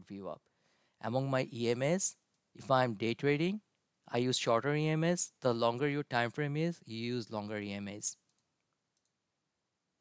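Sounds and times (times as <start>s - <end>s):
faint computer mouse clicks: 8.2s - 9.2s.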